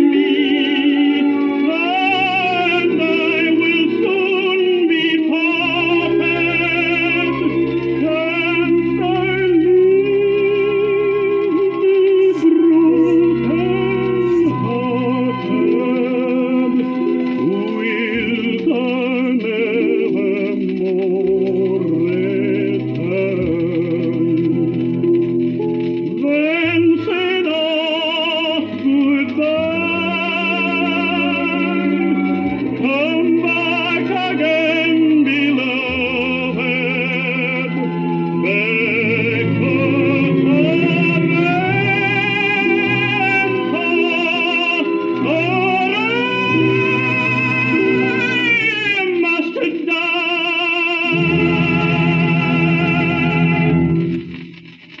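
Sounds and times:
tenor singing with orchestra: 0.0 - 54.1
record crackles: 0.0 - 55.0
record surface hiss: 0.0 - 55.0.

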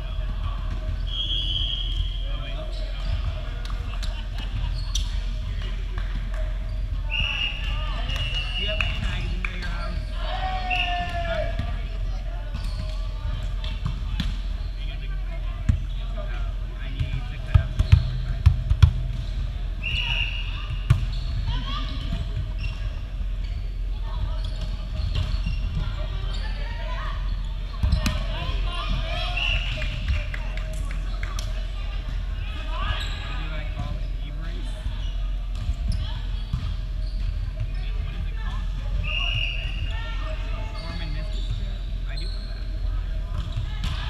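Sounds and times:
players shouting: 10.0 - 11.8.

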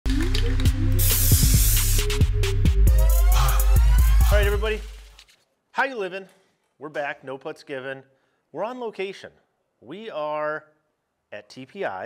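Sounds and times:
electronic music with bass beat: 0.1 - 5.2
spray-paint can hissing: 0.6 - 3.7.

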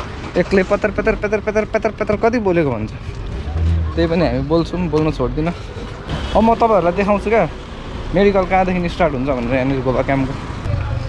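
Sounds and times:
man talking: 0.3 - 3.0, 3.6 - 5.6.

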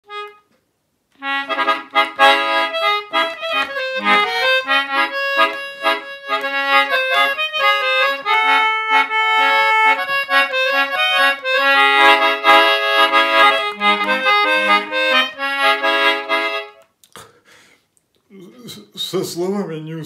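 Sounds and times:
concertina melody: 0.0 - 0.5, 1.2 - 16.8.

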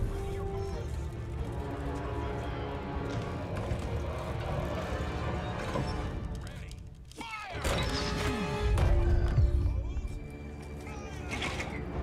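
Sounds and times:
cinematic battle music: 0.0 - 12.0.

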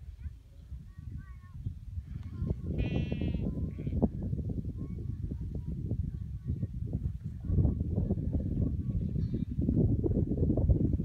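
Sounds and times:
wind rumble on microphone: 0.0 - 11.0
sheep bleat: 2.8 - 4.0.

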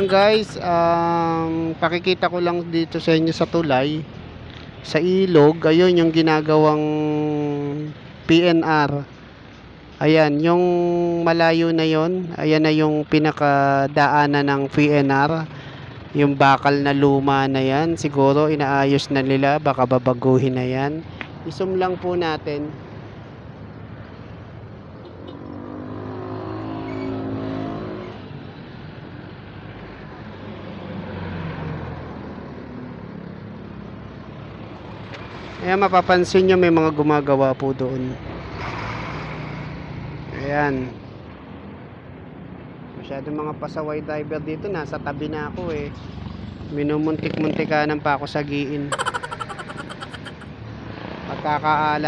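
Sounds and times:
steady traffic hum: 0.0 - 52.0
vehicles passing close by: 0.0 - 52.0
vehicle passing: 25.1 - 28.0.

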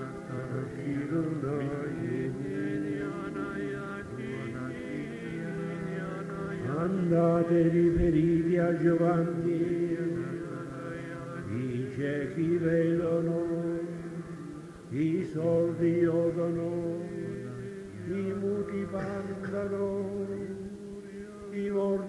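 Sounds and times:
congregation chanting a sung prayer: 0.0 - 22.0.

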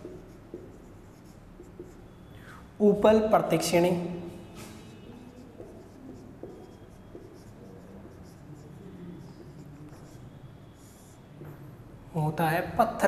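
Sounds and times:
marker pen squeaking on whiteboard: 0.0 - 2.4, 4.6 - 11.6.

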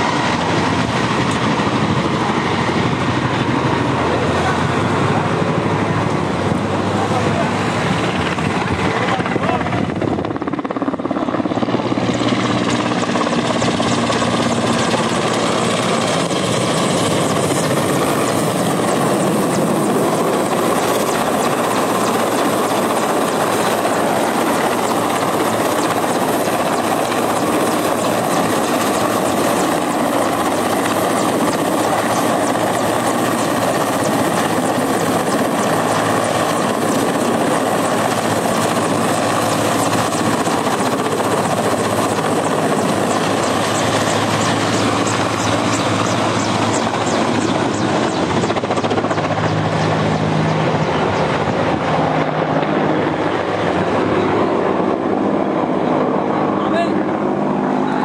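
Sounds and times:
helicopter hovering: 0.0 - 58.0.

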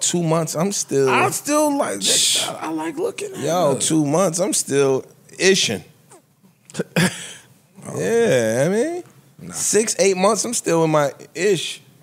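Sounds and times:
man speaking: 0.0 - 5.9.

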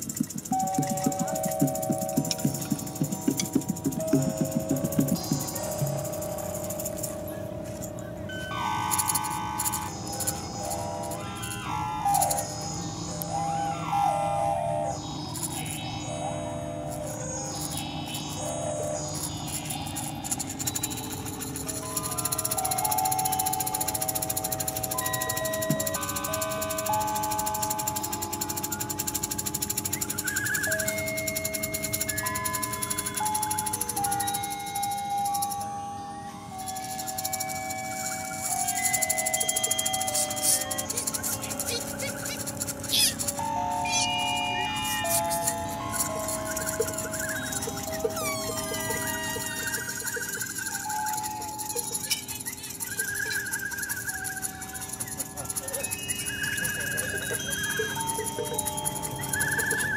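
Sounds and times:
electronic sounds: 0.0 - 59.9
percussion: 0.0 - 59.9
slide whistles: 8.3 - 59.9.

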